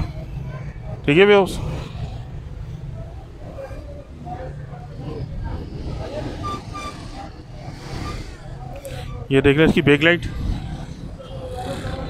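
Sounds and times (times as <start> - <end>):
faint voices: 0.0 - 12.0
traffic rumble: 0.0 - 12.0.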